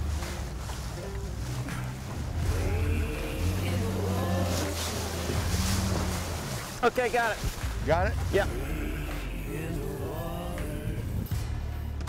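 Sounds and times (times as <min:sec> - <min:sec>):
outboard motor humming: 0:00.0 - 0:06.8
rushing water: 0:00.0 - 0:11.2
wind: 0:00.0 - 0:11.9.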